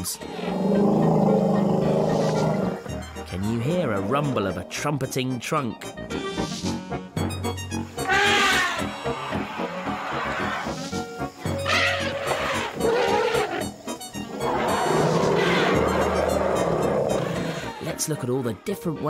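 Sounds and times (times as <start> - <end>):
elephants trumpeting: 0.0 - 3.1, 8.0 - 17.8
background music: 0.0 - 19.0.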